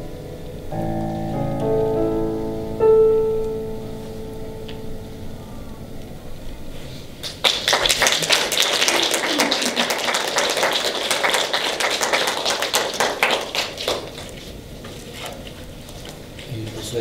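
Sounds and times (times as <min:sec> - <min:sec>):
audience applauding: 0:07.2 - 0:14.5.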